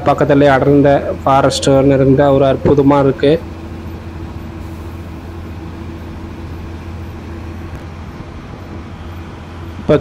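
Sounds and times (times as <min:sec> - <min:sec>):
bus engine drone: 0:00.0 - 0:10.0
road noise: 0:00.0 - 0:10.0.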